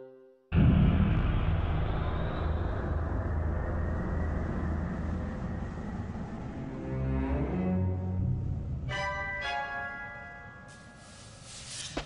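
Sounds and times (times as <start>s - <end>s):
deep noisy rumble: 0.5s - 9.0s.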